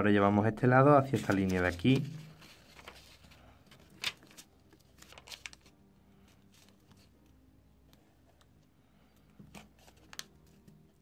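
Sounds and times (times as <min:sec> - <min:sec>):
paper rustling and crinkling: 0:01.0 - 0:07.1, 0:09.5 - 0:11.0.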